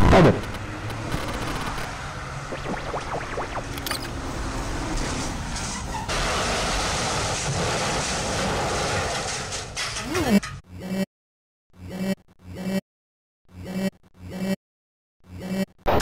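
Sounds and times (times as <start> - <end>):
dense noise with low rumble: 0.0 - 4.1.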